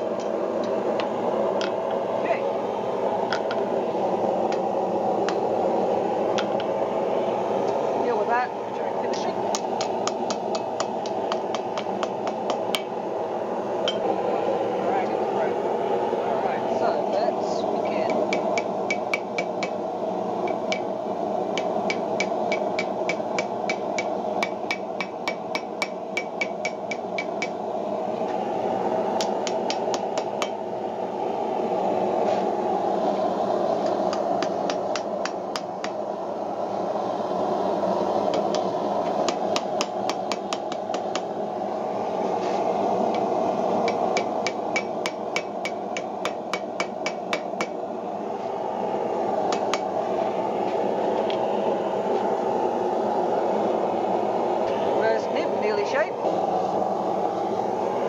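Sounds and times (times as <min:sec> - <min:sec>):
steady rushing noise: 0:00.0 - 0:58.0.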